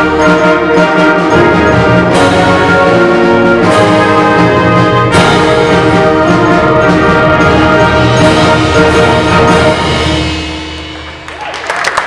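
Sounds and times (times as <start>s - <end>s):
concert band playing: 0.0s - 12.0s.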